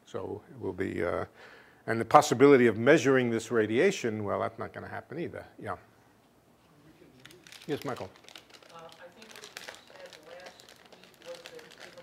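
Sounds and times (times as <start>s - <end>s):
rustling: 6.6s - 12.0s.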